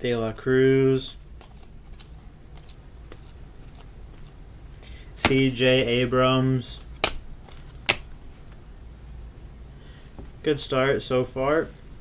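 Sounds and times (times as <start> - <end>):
low steady hum: 0.0 - 12.0
cards clicking on table: 5.2 - 5.5, 6.8 - 8.1.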